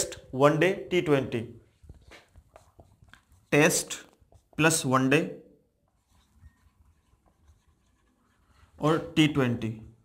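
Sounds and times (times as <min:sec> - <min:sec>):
marker squeaking on whiteboard: 0:05.9 - 0:09.2.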